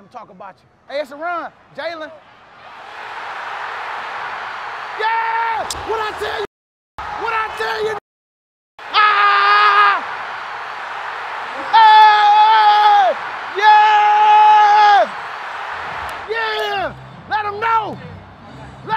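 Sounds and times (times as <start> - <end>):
man shouting yes: 5.0 - 6.4, 11.5 - 15.2.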